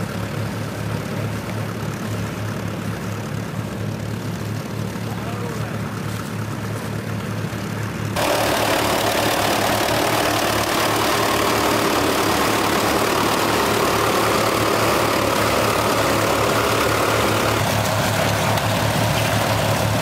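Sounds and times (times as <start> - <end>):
tractor diesel engines running: 0.0 - 20.0.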